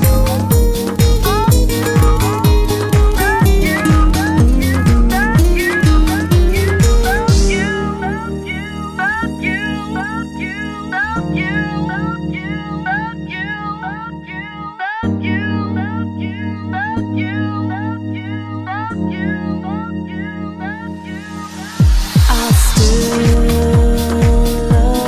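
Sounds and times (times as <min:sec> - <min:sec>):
kick drum beat: 0:00.0 - 0:07.7, 0:21.8 - 0:25.0
held synth chords: 0:00.0 - 0:25.0.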